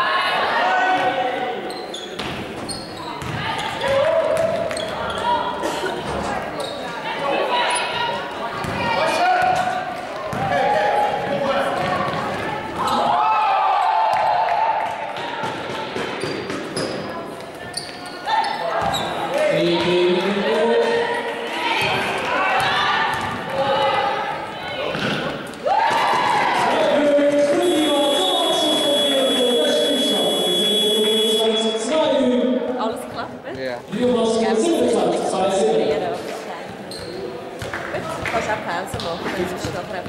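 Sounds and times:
voices echoing in hall: 0.0s - 40.0s
basketball bouncing on floor: 3.2s - 4.9s
scoreboard buzzer: 27.6s - 31.8s.

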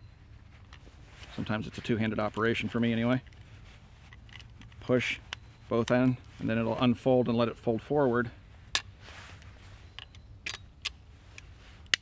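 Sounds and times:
metal clicks of folding gun stock: 2.3s - 6.5s, 8.7s - 12.0s.

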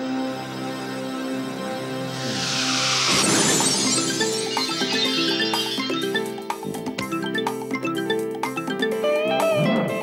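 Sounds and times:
synthesized title music: 1.0s - 8.1s
glass shattering effect: 2.3s - 6.4s.

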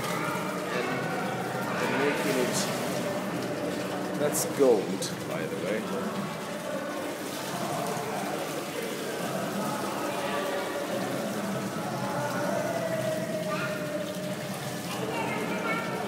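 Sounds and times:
faint voices: 0.0s - 16.0s
water pouring and splashing on stone: 0.0s - 16.0s.

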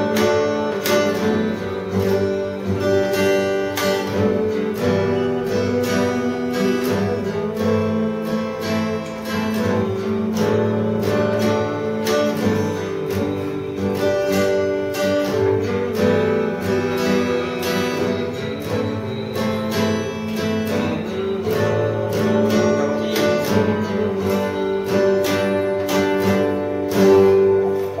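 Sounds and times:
acoustic guitar chords: 0.0s - 28.0s.

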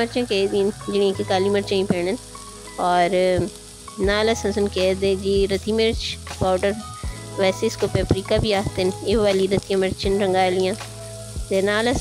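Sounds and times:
background music with singing: 0.0s - 12.0s
chicken sizzling in oil: 0.0s - 12.0s.

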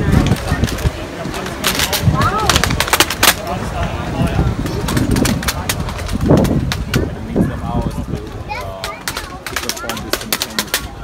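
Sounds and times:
rifles clacking: 0.0s - 3.5s, 8.2s - 11.0s
crowd murmur: 0.0s - 11.0s.

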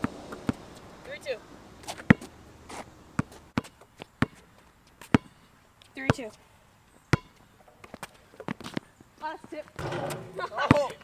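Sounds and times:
basketball bouncing on asphalt: 0.0s - 6.4s, 7.1s - 11.0s.

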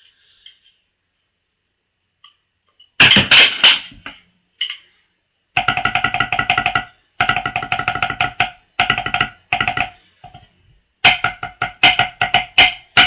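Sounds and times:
electronic drum pad strokes: 5.6s - 13.0s.

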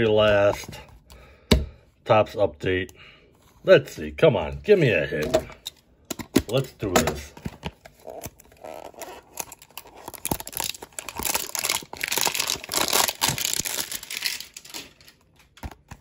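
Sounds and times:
packaging crinkling and tearing: 7.5s - 16.0s.

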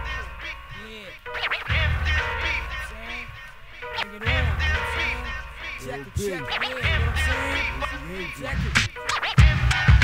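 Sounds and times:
hip hop beat: 0.0s - 10.0s
turntable scratching: 0.0s - 10.0s.

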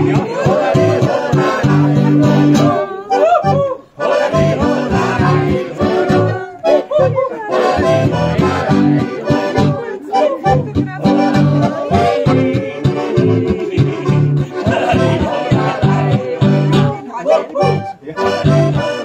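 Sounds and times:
accordion: 0.0s - 19.0s
acoustic guitar: 0.0s - 19.0s
men singing: 0.0s - 19.0s.

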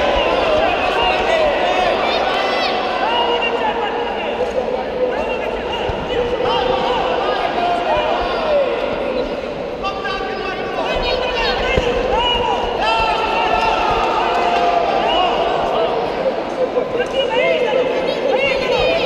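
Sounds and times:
voices shouting in a hall: 0.0s - 19.0s.

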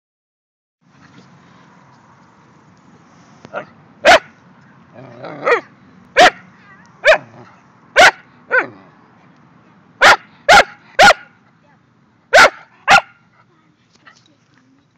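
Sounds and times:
dog barking: 3.5s - 4.3s, 5.4s - 7.4s, 8.0s - 8.8s, 10.0s - 11.4s, 12.3s - 13.2s.

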